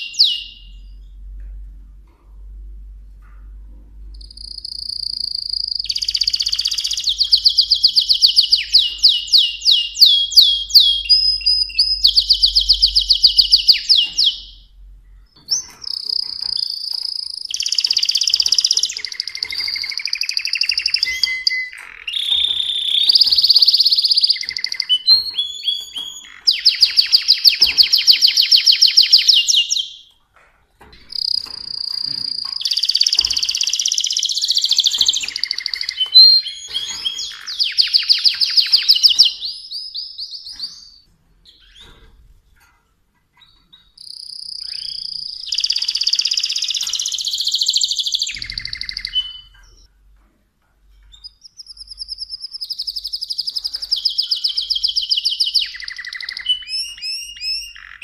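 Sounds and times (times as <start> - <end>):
canary singing trills and whistles: 0.0 - 1.4, 4.2 - 30.2, 31.0 - 42.2, 43.4 - 49.9, 51.0 - 58.0.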